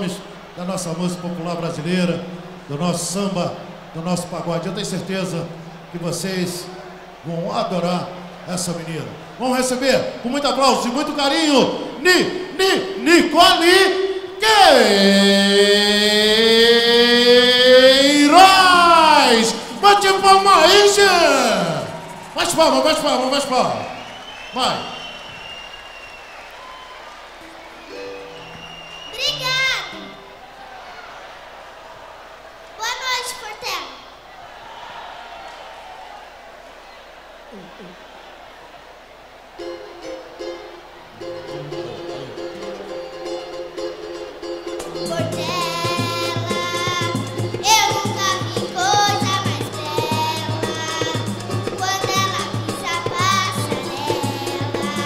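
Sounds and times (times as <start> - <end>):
audience applause: 0.0 - 12.5, 15.0 - 32.9, 34.2 - 40.0
samba band playing: 11.7 - 25.7, 41.1 - 55.0
girl singing into a microphone: 44.9 - 55.0.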